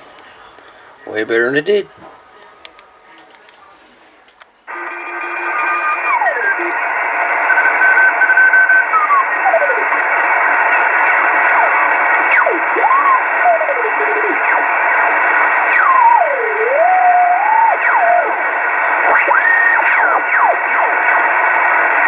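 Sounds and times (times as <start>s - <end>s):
radio static hiss: 0.0s - 22.0s.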